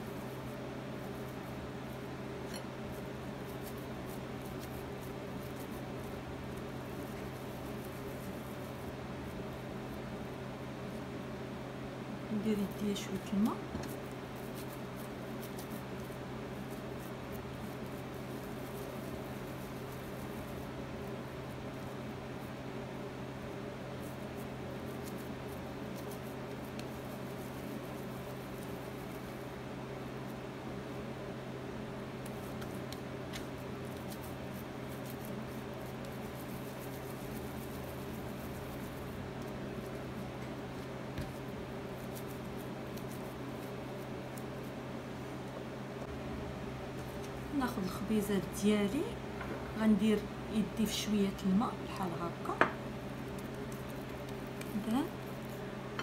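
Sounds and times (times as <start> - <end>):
steady low hum: 0.0 - 56.0
dough squishing: 31.9 - 45.6, 51.3 - 56.0.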